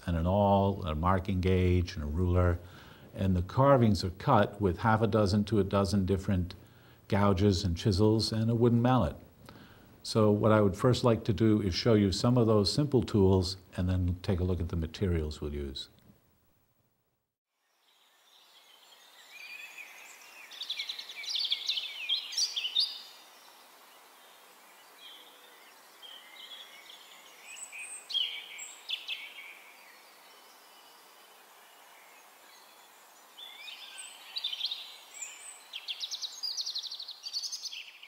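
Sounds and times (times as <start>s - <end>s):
outdoor background hiss: 0.0s - 38.0s
birds chirping and trilling: 17.7s - 38.0s.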